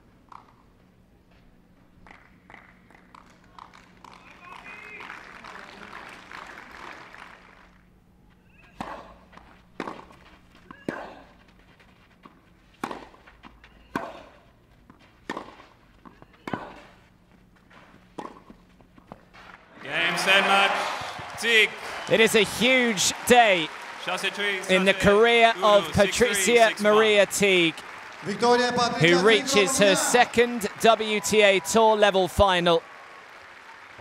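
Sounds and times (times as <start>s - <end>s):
racket striking tennis ball: 9.8s - 10.1s, 12.8s - 13.2s, 15.2s - 16.9s, 18.2s - 18.5s
low crowd voices: 19.8s - 32.8s.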